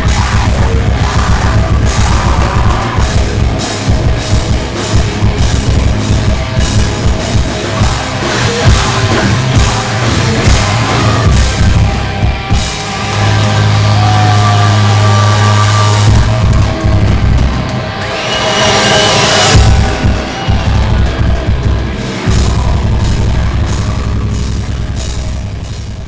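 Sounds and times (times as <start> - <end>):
heavy metal band playing: 0.0 - 26.0.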